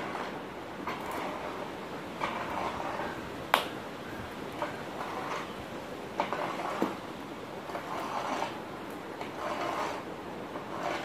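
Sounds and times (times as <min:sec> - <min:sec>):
steady background hiss: 0:00.0 - 0:10.9.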